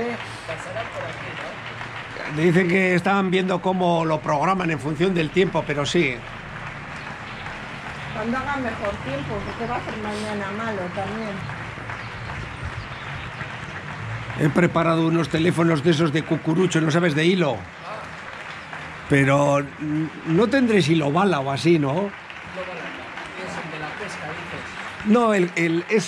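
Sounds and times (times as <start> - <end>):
faint distant voices: 0.0 - 26.0.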